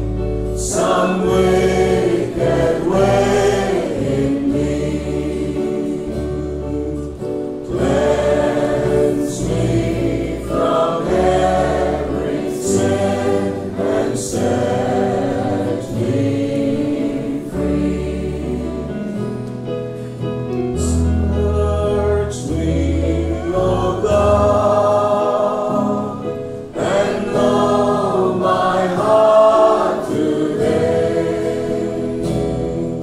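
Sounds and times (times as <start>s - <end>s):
choir singing: 0.0s - 19.4s, 20.8s - 33.0s
held bass notes: 0.0s - 33.0s.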